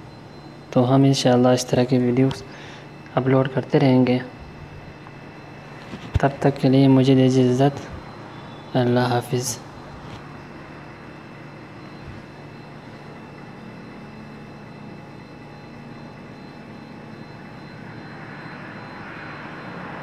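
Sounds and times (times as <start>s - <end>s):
faint hum tones: 0.0s - 20.0s
steady background drone: 0.0s - 20.0s.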